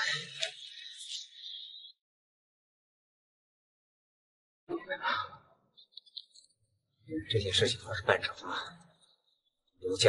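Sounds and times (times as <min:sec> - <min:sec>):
man speaking: 0:07.1 - 0:08.7.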